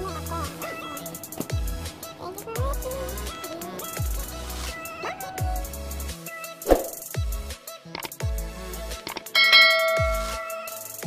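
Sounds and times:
bright notification bell ding: 9.4s - 10.5s.

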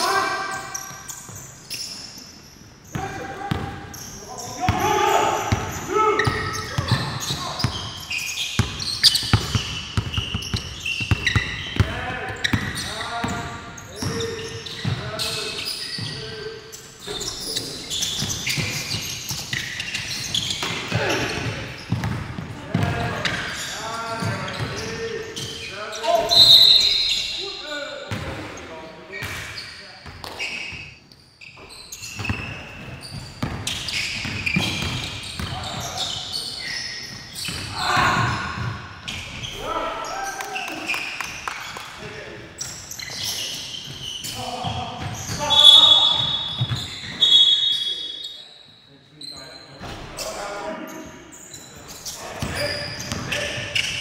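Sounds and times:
players calling out: 2.8s - 28.8s, 33.5s - 41.3s, 42.1s - 48.4s.

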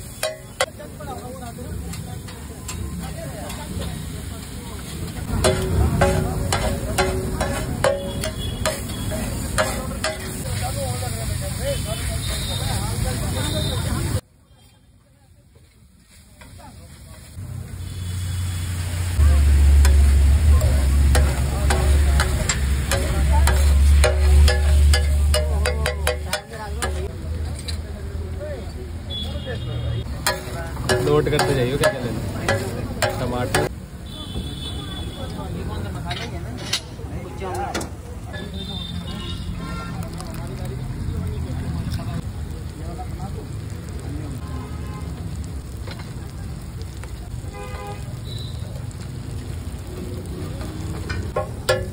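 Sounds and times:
masala sizzling: 0.0s - 51.9s
traffic rumble: 0.0s - 51.9s
voices: 0.0s - 51.9s
metal spatula scraping griddle: 4.8s - 10.8s, 21.0s - 27.8s, 30.2s - 33.7s, 36.0s - 37.0s.

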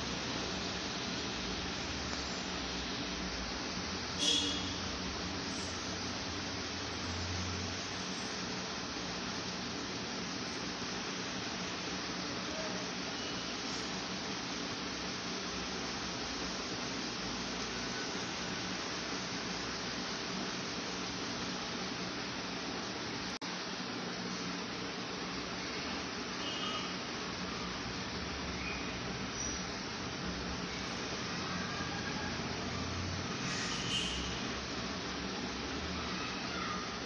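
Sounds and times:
steady background hiss: 0.0s - 37.0s.

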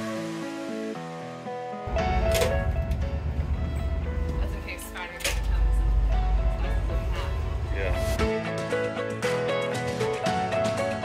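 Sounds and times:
background music: 0.0s - 11.0s
ferry engines rumbling: 1.9s - 8.3s.

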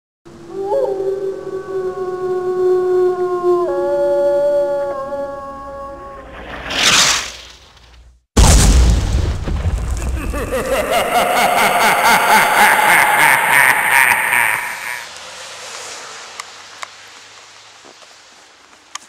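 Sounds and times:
howl-like pitched wail: 0.5s - 6.3s, 10.4s - 15.1s
rising whoosh: 10.2s - 17.1s.

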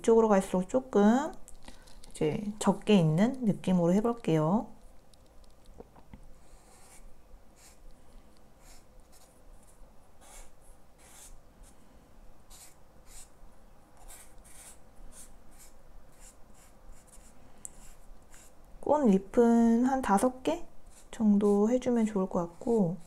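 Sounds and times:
marker stroking on paper: 6.4s - 7.8s, 8.6s - 11.4s, 12.5s - 13.3s, 14.0s - 18.6s.

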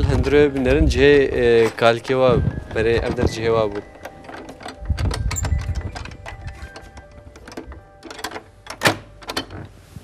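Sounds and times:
key rattling in door lock: 0.0s - 9.7s.

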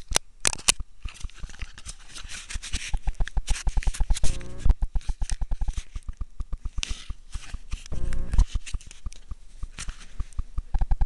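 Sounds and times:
brief low hum: 4.2s - 4.8s, 7.9s - 8.5s.

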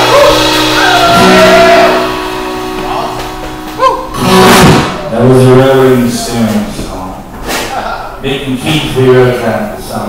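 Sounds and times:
drum kit: 0.0s - 5.9s
loud noisy swell: 0.0s - 6.4s
electric bass: 0.0s - 7.3s
acoustic guitar: 0.0s - 8.0s.

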